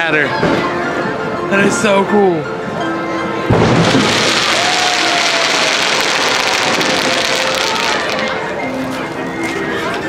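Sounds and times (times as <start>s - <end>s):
fireworks crackling: 3.5s - 9.0s
falling firework whistle: 3.6s - 8.4s.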